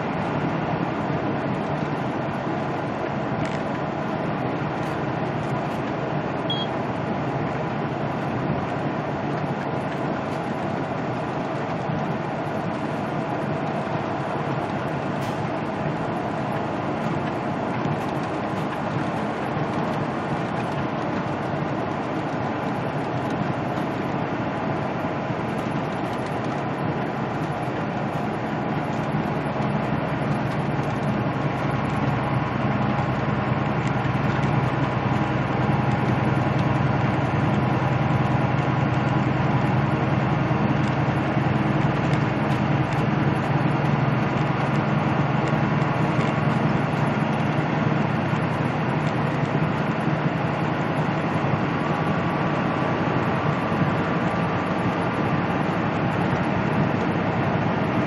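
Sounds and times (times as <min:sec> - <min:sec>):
truck diesel engine droning: 0:00.0 - 0:58.0
tyre and road noise: 0:00.0 - 0:58.0.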